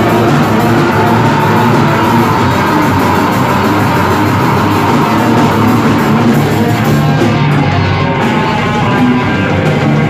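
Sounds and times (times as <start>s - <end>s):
bass guitar: 0.0s - 10.0s
distorted electric guitars: 0.0s - 10.0s
drum kit fast beat: 0.0s - 10.0s.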